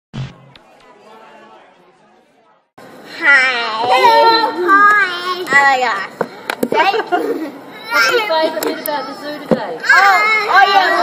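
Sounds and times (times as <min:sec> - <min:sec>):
background chatter of voices: 0:00.5 - 0:11.0.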